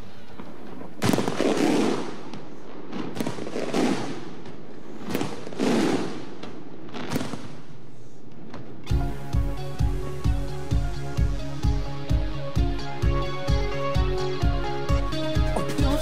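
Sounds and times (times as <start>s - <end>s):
fireworks exploding: 0.0s - 11.4s.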